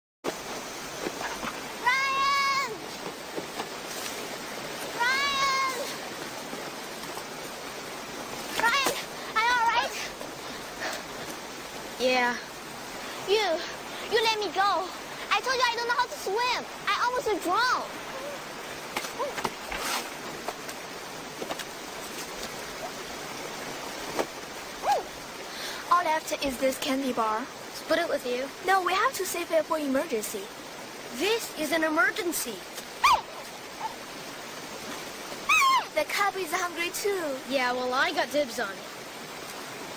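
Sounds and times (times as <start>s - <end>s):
river rapids rushing: 0.3s - 39.9s
high-pitched falling calls: 35.4s - 36.0s.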